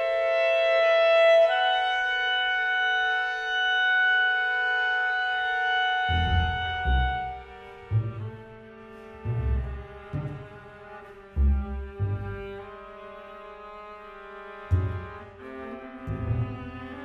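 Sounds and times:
clarinet and strings sustained notes: 0.0s - 17.0s
double bass low notes: 6.0s - 13.3s, 14.6s - 17.0s.

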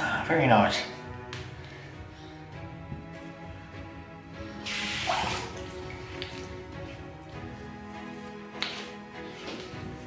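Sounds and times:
quiet background music: 0.0s - 10.0s
tap water splashing in sink: 4.7s - 6.7s.

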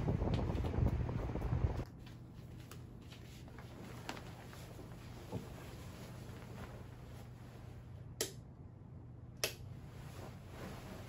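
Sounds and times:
duvet rustling: 2.0s - 8.0s, 9.8s - 11.0s.

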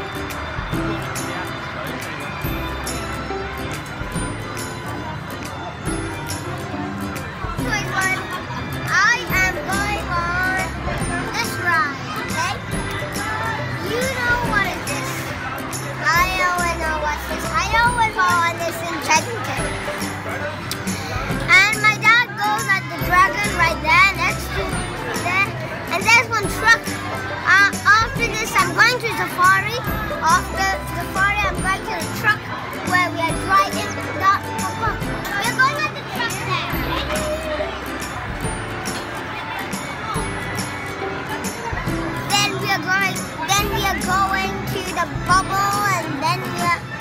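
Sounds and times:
carousel music: 0.0s - 47.0s
young child's voice: 7.6s - 12.7s, 13.4s - 15.4s, 16.0s - 19.8s, 21.0s - 37.7s, 42.1s - 46.8s.

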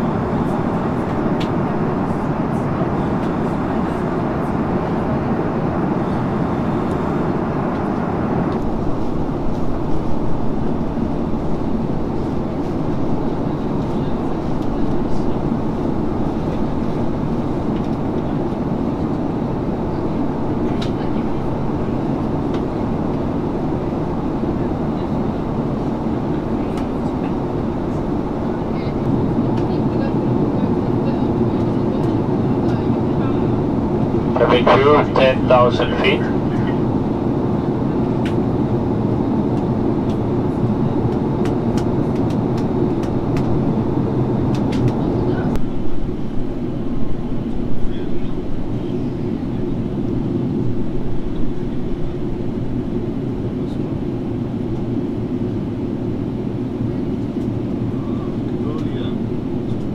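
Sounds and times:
airliner cabin roar: 0.0s - 59.9s.

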